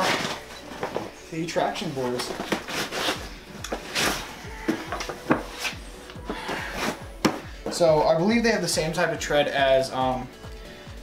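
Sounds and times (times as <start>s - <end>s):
nylon bag rustling: 0.0s - 7.9s.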